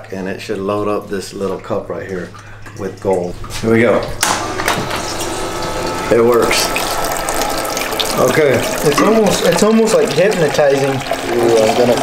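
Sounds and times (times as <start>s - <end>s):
water splashing into tub: 0.0s - 12.0s
water spraying: 2.2s - 12.0s.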